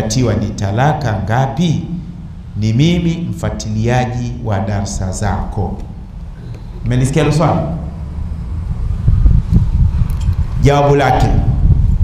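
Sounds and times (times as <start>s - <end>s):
low rumbling noise on microphone: 0.0s - 12.0s.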